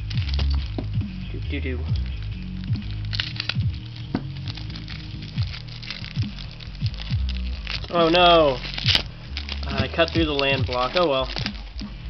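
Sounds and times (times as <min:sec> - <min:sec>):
background music: 0:00.0 - 0:12.0
shrink-wrap crinkling: 0:00.0 - 0:12.0.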